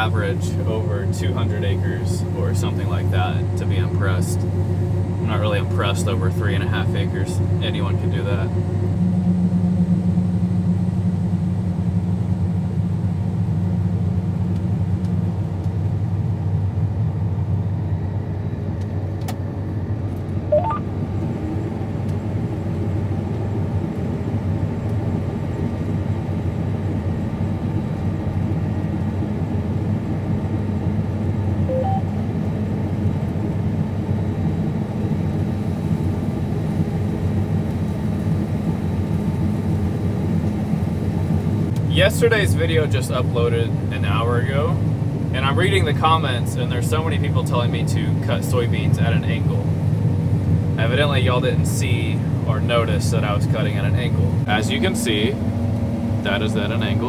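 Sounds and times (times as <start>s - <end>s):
combine harvester deep hum: 0.0s - 57.0s.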